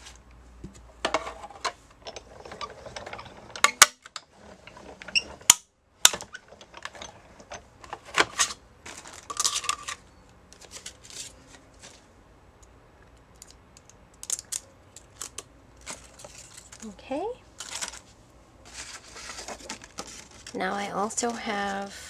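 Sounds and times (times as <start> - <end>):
clicks and rustles of handling: 0.0 - 17.0, 17.6 - 21.9.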